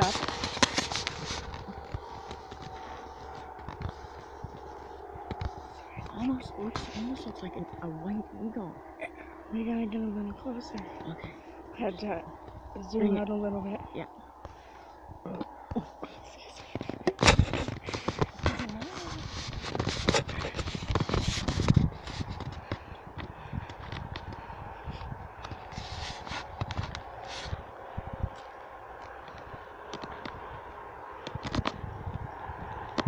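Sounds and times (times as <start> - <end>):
brush rustling and crackling: 0.0 - 7.6, 14.3 - 22.9, 24.9 - 30.5
sharp crackles and knocks: 0.0 - 13.0, 13.6 - 33.0
steady low hum: 0.0 - 33.0.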